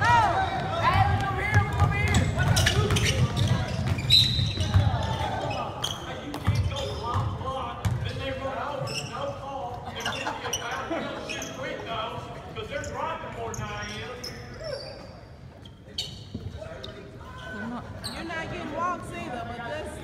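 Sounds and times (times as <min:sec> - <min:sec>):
basketball bouncing on wooden floor: 0:00.6 - 0:05.1.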